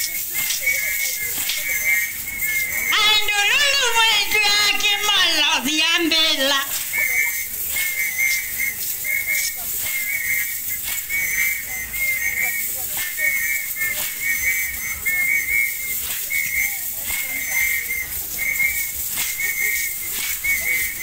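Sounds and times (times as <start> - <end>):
whistle trilling blasts: 0.0 - 21.0.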